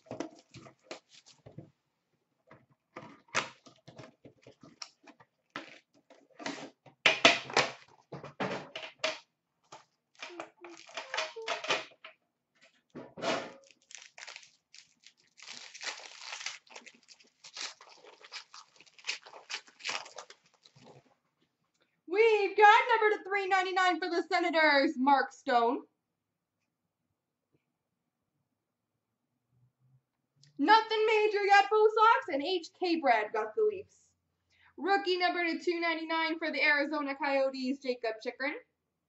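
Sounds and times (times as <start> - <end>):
cardboard and wrapper crinkling: 0.0 - 1.4, 9.7 - 11.5, 13.5 - 21.1.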